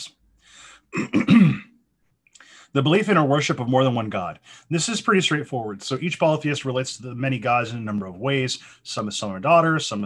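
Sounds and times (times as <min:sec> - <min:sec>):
man clearing his throat: 0:00.9 - 0:01.8.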